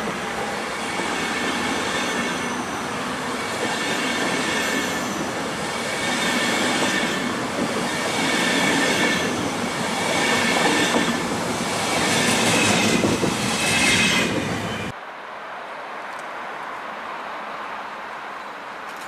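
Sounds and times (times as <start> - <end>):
train coaches rumbling on rails: 0.0 - 15.0.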